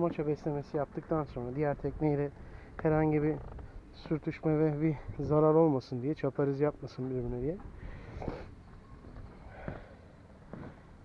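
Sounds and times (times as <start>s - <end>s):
steady low rumble: 0.0s - 11.0s
person breathing or sniffing: 7.8s - 8.5s.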